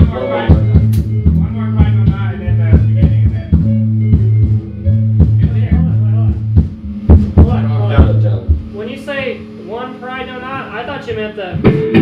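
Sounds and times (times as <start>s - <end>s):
drum kit hits: 0.0s - 8.8s, 11.5s - 12.0s
electric bass low notes: 0.0s - 12.0s
electric guitar: 11.6s - 12.0s.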